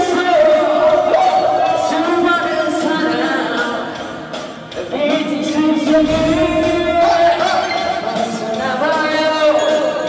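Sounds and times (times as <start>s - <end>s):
man singing into microphone: 0.0s - 4.0s, 4.8s - 10.0s
karaoke backing track: 0.0s - 10.0s.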